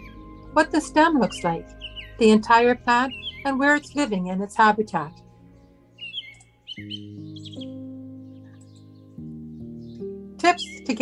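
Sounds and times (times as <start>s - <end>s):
bird chirps: 0.0s - 4.3s, 5.1s - 11.0s
soft sustained chords music: 0.0s - 11.0s.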